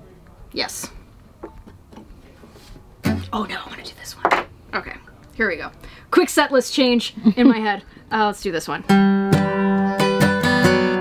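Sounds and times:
quiet room hiss: 0.0s - 10.0s
acoustic guitar being handled: 1.4s - 3.4s.

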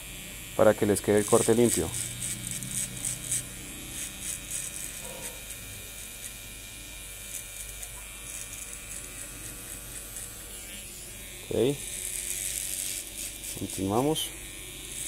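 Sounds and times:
electric hair trimmer buzzing: 0.0s - 15.0s.

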